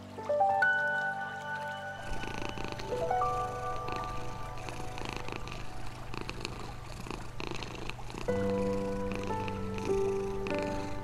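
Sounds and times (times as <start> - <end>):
calm music with held notes: 0.0 - 11.0
cat purring: 2.0 - 11.0.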